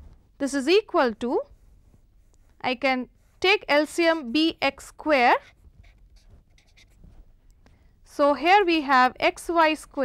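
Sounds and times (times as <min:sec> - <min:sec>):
marker writing on paper: 0:04.0 - 0:04.4, 0:05.1 - 0:07.3.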